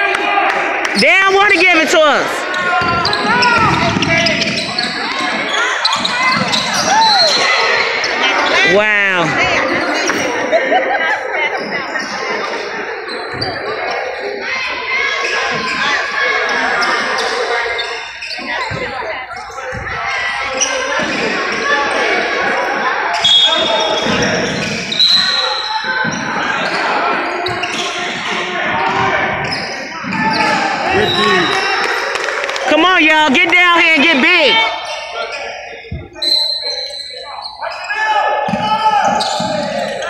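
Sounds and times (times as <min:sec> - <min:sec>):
indistinct echoing voices: 0:00.0 - 0:40.0.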